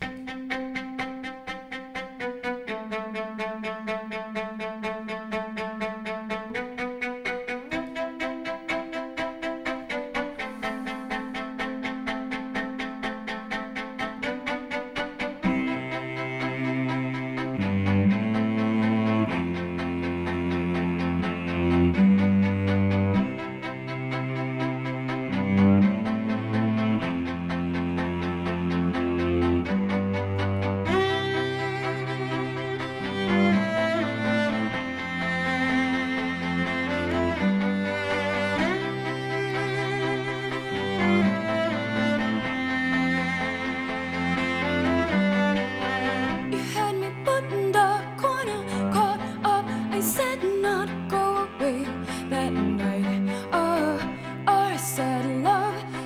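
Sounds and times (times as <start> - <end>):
cello playing: 0.0 - 56.0.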